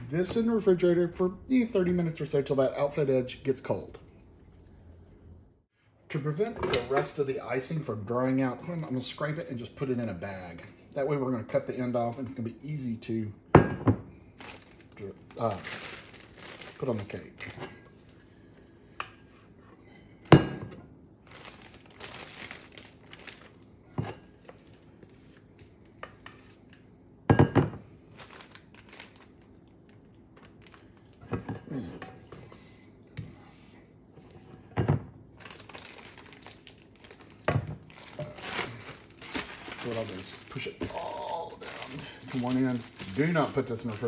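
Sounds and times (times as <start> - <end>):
plastic bag crinkling: 14.4 - 17.6, 21.2 - 23.6, 28.1 - 31.2, 35.4 - 44.0.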